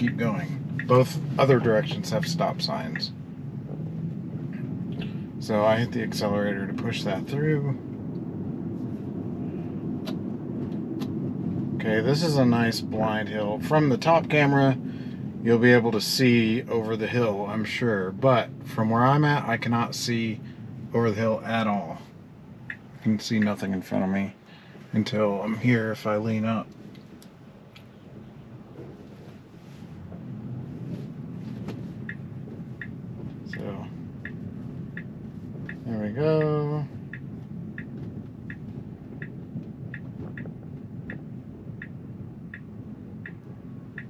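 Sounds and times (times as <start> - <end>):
road and tyre rumble: 0.0 - 44.0.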